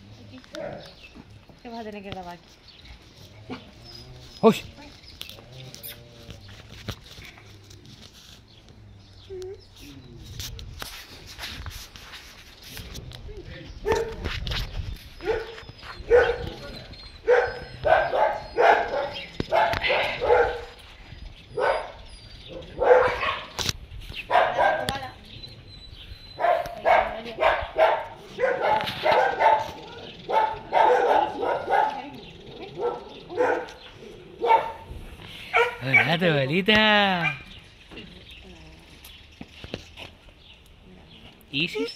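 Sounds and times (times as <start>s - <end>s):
dog barking: 13.8s - 14.2s, 15.2s - 16.6s, 17.2s - 20.8s, 21.6s - 22.0s, 22.6s - 23.6s, 24.3s - 25.1s, 26.4s - 32.2s, 32.8s - 33.8s, 34.4s - 34.9s, 35.5s - 36.2s.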